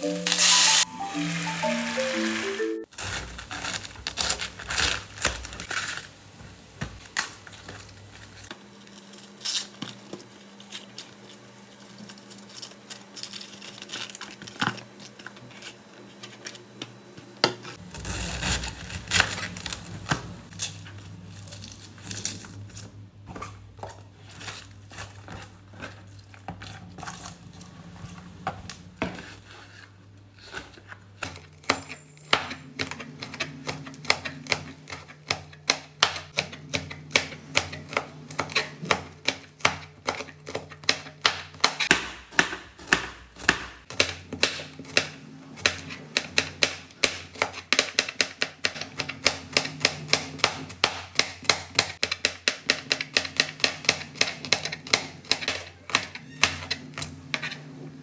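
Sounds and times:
knife chopping on plastic board: 31.2s - 57.5s.

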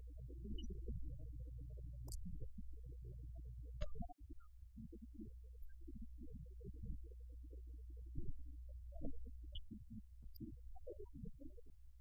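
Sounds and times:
low electrical hum: 0.0s - 10.8s.

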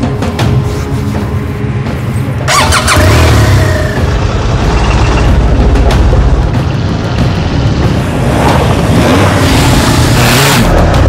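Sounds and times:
music: 0.0s - 11.0s
motorcycle engine starting and running: 2.4s - 11.0s.

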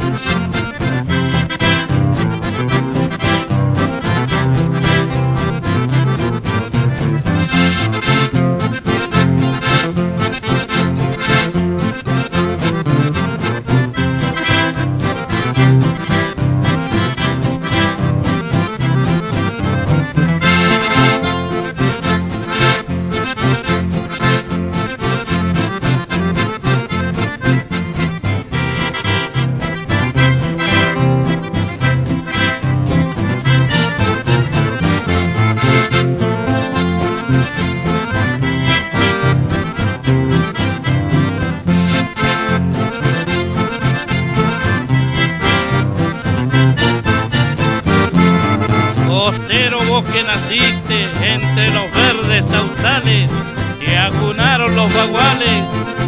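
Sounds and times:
accordion waltz: 0.0s - 56.0s
guitar accompaniment: 0.0s - 56.0s
repeating bass: 0.0s - 56.0s.

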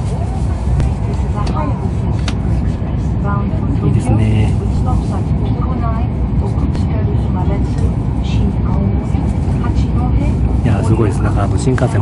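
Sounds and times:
train rumbling at speed: 0.0s - 12.0s.

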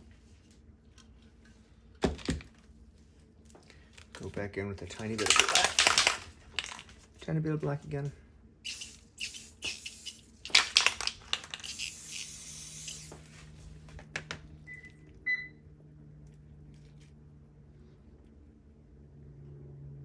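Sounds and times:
small hard objects clinking: 5.0s - 6.9s.

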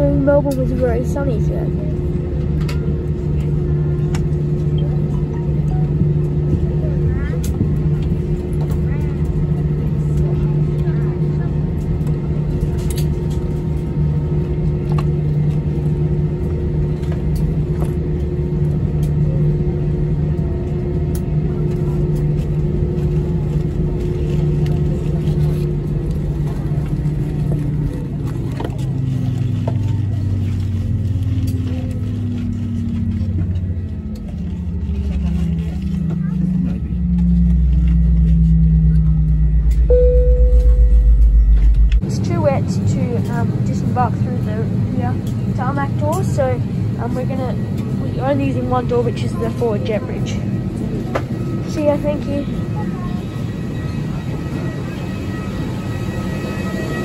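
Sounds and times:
jet engines droning: 0.0s - 57.0s.

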